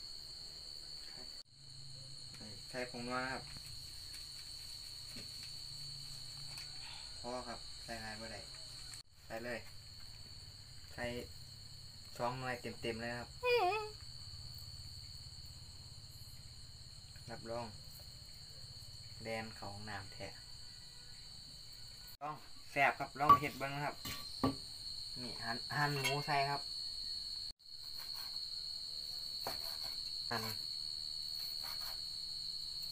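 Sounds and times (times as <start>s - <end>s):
night insects trilling: 0.0s - 32.9s.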